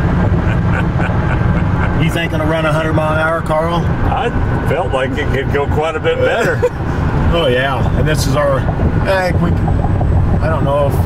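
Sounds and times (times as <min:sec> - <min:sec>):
road and wind rumble in vehicle cab: 0:00.0 - 0:11.0.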